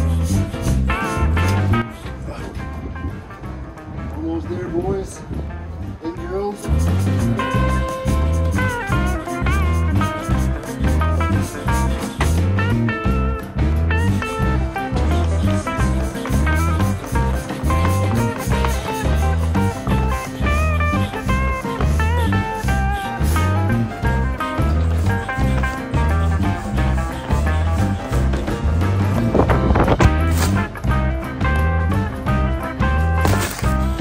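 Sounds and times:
guitar tune over bass beat: 0.0 - 34.0.

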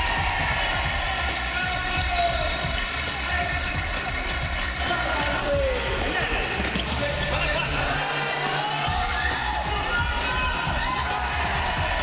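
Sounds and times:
music: 0.0 - 12.0
voices: 1.0 - 8.7.

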